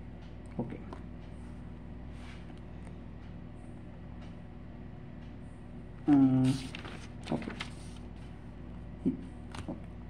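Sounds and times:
low electrical hum: 0.0 - 10.0
paper rustling: 6.4 - 8.4.

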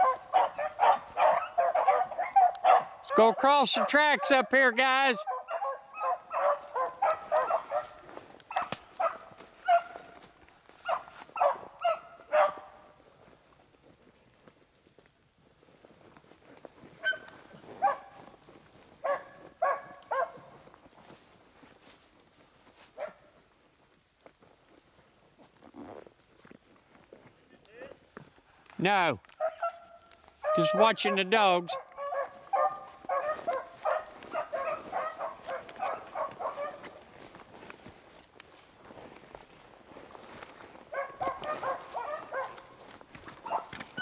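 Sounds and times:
hounds baying: 0.0 - 12.9, 17.0 - 18.3, 19.0 - 20.7, 29.4 - 37.6, 40.8 - 44.0.

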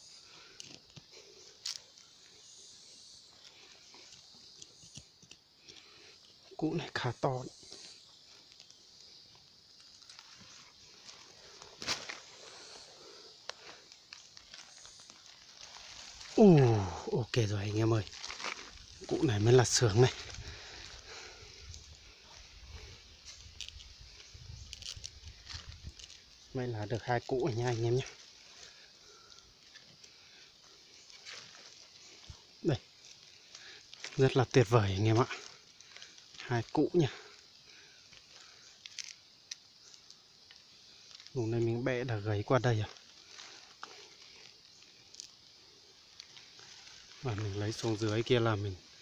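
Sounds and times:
rustling of soil and dry leaves: 0.0 - 49.0
small ticks: 0.3 - 6.6, 7.5 - 16.4, 23.0 - 26.6, 27.7 - 41.4, 42.5 - 49.0.

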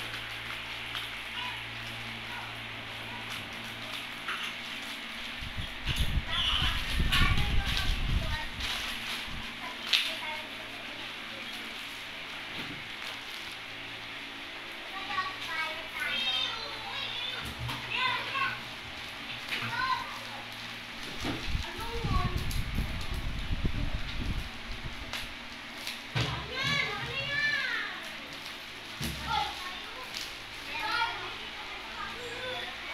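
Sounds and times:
bubble wrap rustling: 0.0 - 32.9
children calling and playing: 0.6 - 24.4, 26.1 - 32.9.

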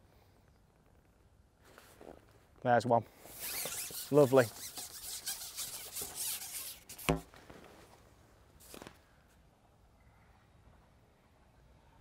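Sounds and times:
short squeak: 3.3 - 7.0
fishing pole scraping: 3.3 - 7.3.

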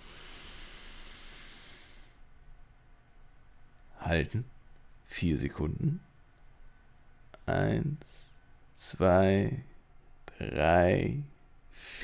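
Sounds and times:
man breathing in deeply: 0.0 - 2.2.

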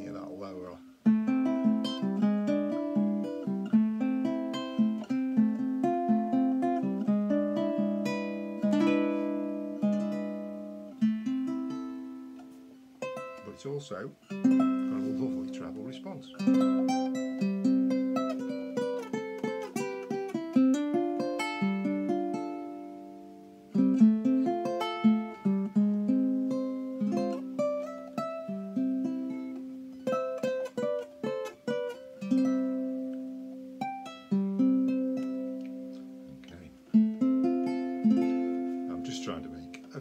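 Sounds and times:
ukulele played fingerstyle: 0.0 - 40.0.

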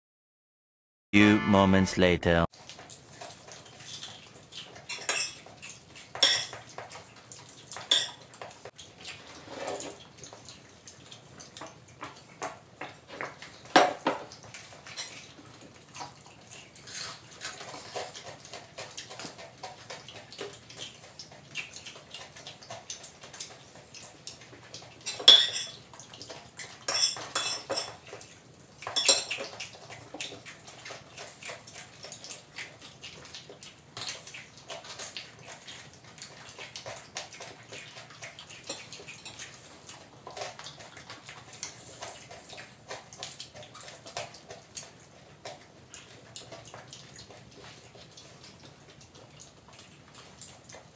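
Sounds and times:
cutlery clinking on plates: 4.9 - 5.5, 6.2 - 6.6, 7.7 - 8.2, 25.0 - 25.8, 26.8 - 28.0, 28.9 - 29.6
crunchy food chewing: 28.0 - 50.9.

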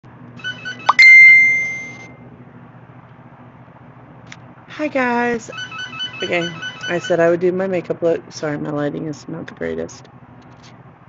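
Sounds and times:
bell-like ding: 0.8 - 2.1.

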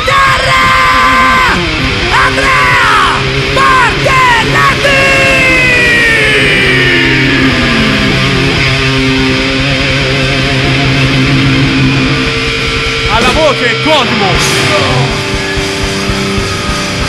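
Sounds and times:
distorted electric guitar: 0.0 - 17.0
low bass note: 6.6 - 17.0.

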